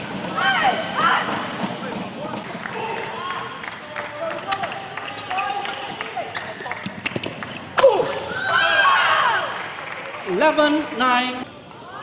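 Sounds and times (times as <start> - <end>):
shoes squeaking on court: 4.5 - 7.8.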